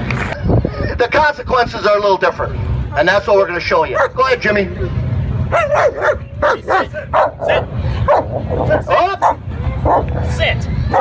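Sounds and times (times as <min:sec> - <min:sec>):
dog barking: 0:03.9 - 0:04.2, 0:05.5 - 0:08.3, 0:09.2 - 0:10.1.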